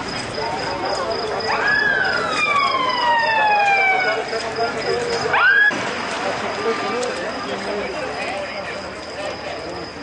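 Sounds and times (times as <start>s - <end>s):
emergency vehicle siren wailing: 0.0s - 5.8s.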